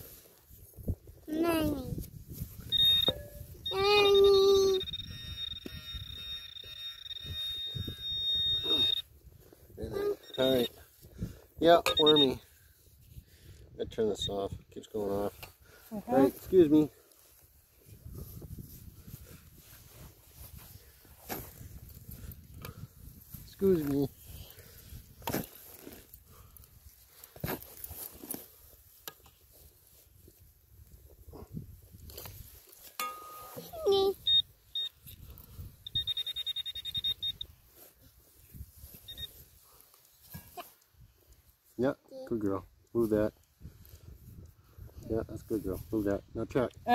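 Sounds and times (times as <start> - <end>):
metal detector beeping: 2.6 - 9.2, 9.9 - 10.8, 11.7 - 12.5, 14.2 - 14.5, 33.0 - 37.6, 38.9 - 39.4
pinpointer click: 2.7 - 3.9, 11.8 - 12.3
hands rustling in soil and grass: 15.8 - 33.0.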